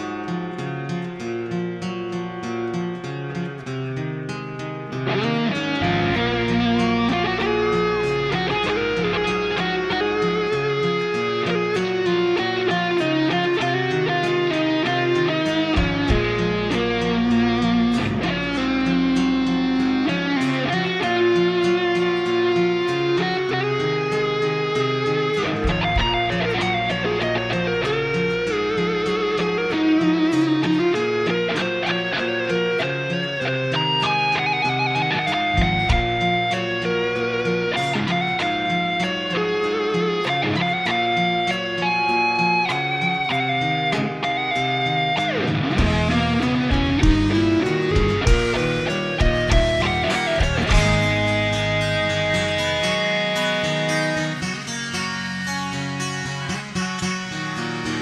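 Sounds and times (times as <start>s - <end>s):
electric guitar chords: 0.0s - 58.0s
lead guitar melody: 0.0s - 58.0s.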